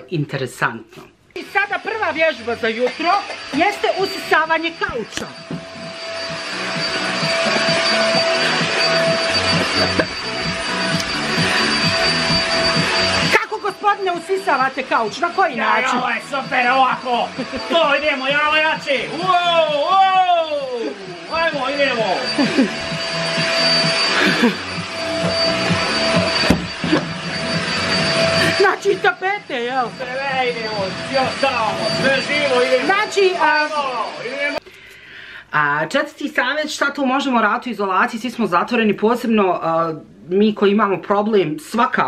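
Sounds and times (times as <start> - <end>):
vacuum cleaner running: 1.4 - 34.6.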